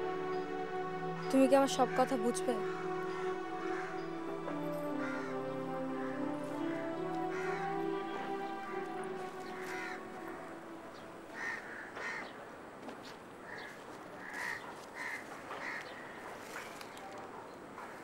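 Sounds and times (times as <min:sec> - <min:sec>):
soft background music: 0:00.0 - 0:12.0
crows cawing: 0:01.9 - 0:12.4, 0:13.4 - 0:16.3.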